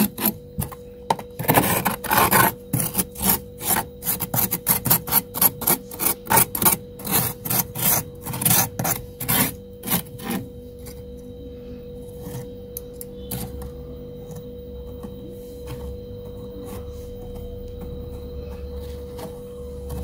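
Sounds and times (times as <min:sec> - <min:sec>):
metal utensil scraping frost: 0:01.4 - 0:10.9.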